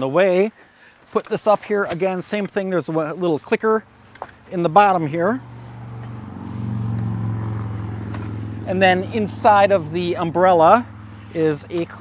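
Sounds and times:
car driving past: 0:05.1 - 0:12.0.

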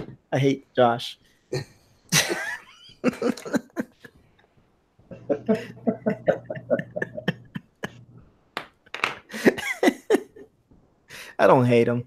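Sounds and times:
man laughing breathily: 0:05.1 - 0:08.2, 0:09.3 - 0:10.4.

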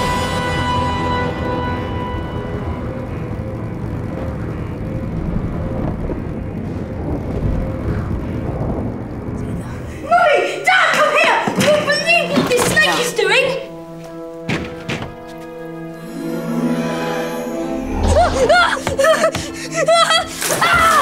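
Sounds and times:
orchestral chord: 0:00.0 - 0:07.8, 0:13.1 - 0:18.9
motorbike engine rumble: 0:00.0 - 0:09.9
rushing wind: 0:02.2 - 0:10.7.

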